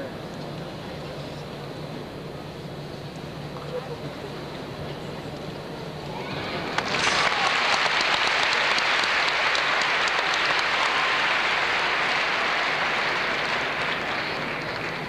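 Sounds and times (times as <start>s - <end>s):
crowd applauding: 6.6s - 15.0s.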